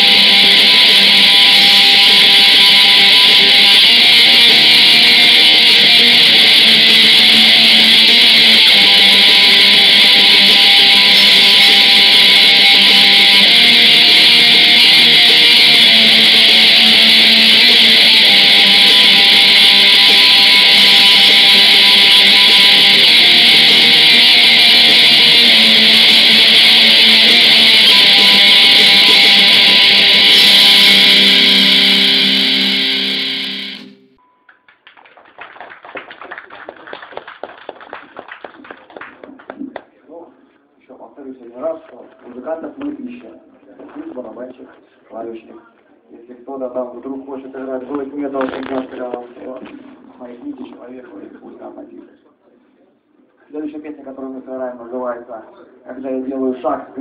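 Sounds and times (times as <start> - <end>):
black metal band playing: 0.0 - 34.2.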